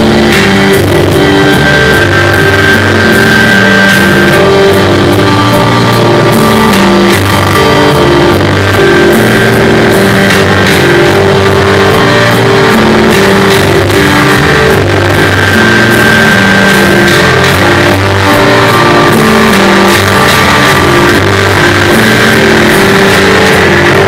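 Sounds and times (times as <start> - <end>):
live band playing instrumental music: 0.0 - 24.0
violin held high note: 0.0 - 24.0.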